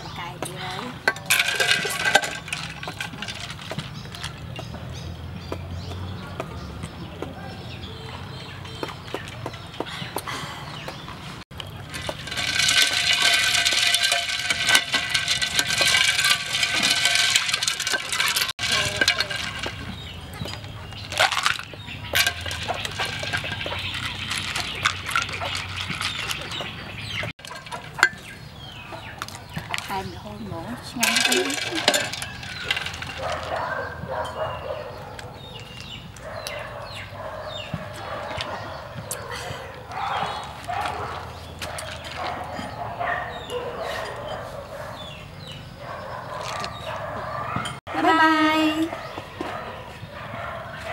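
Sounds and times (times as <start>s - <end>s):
ladle clinking against glass jar: 0.8s - 4.7s, 11.6s - 30.0s, 31.0s - 34.7s
chickens clucking: 15.1s - 47.8s.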